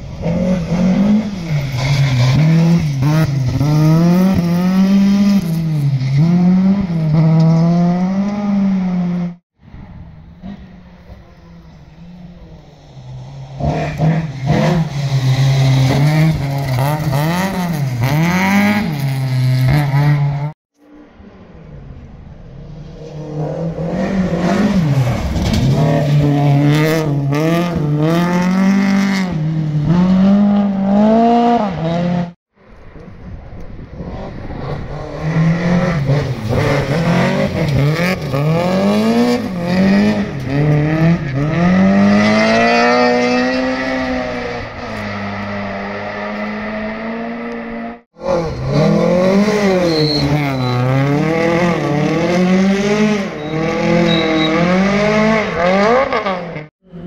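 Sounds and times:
rally cars at full throttle: 0.0 - 57.0.

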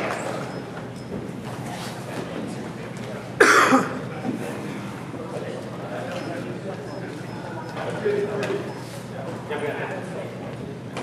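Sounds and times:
low murmur of gymnasium: 0.0 - 11.0
loud cough: 3.4 - 4.0.

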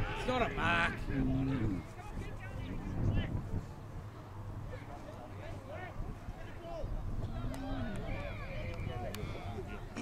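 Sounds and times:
distant shouting: 4.7 - 10.0.

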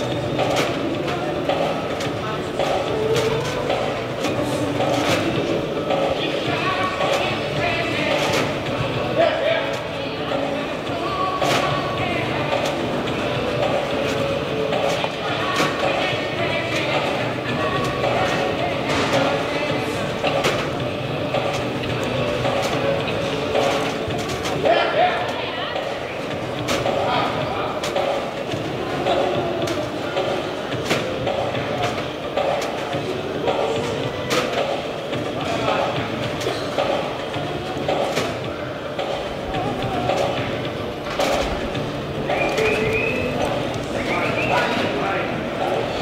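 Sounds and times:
indistinct murmur of voices: 0.0 - 46.0.

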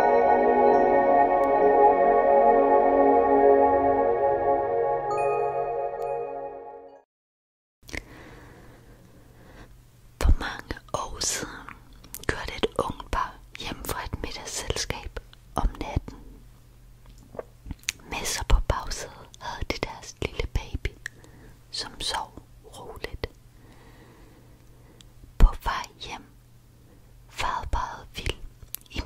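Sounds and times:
person whispering: 21.8 - 23.3, 25.4 - 26.3, 27.3 - 29.0.

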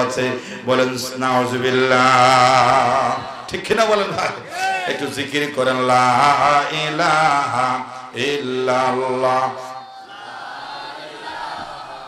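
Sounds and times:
man chanting into a microphone: 0.0 - 9.9.

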